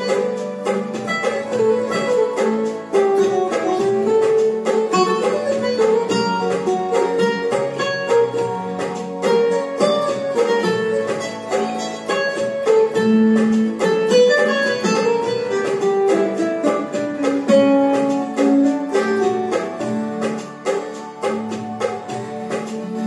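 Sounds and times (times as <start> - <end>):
electronic keyboard melody: 0.0 - 23.0.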